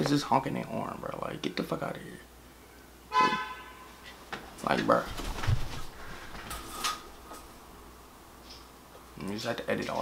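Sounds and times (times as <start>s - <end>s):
car horn honk: 3.1s - 4.0s.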